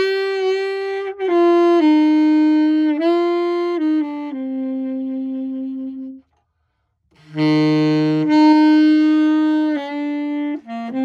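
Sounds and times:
tenor saxophone held notes: 0.0 - 6.5, 7.1 - 11.0.

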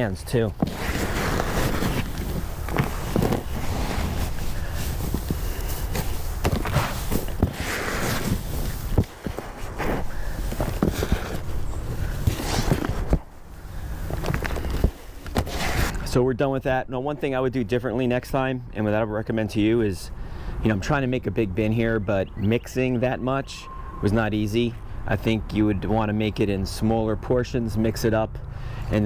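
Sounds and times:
hands rustling potting mix: 0.0 - 16.1.

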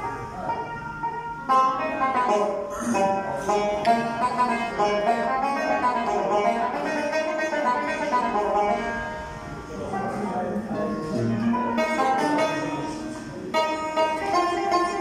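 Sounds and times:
plucked string ensemble: 0.0 - 15.0.

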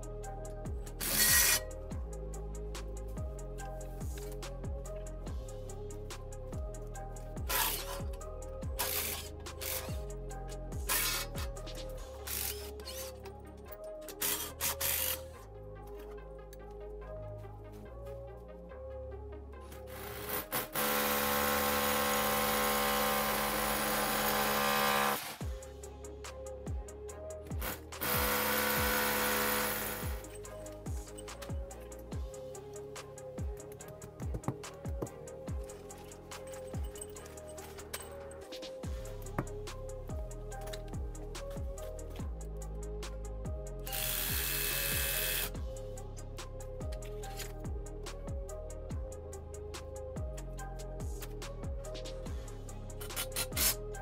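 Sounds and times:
background music with beat: 0.0 - 54.0
cordless drill boring into brick: 20.2 - 25.4, 28.0 - 30.2.

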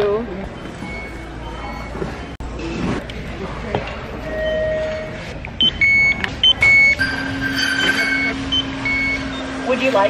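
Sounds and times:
barcode scanner beeping: 4.3 - 9.5.

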